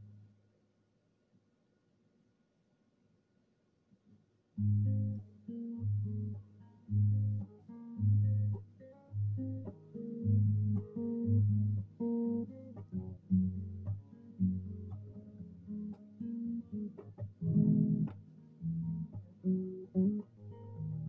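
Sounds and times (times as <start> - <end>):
fingerstyle baritone guitar: 4.6 - 21.0.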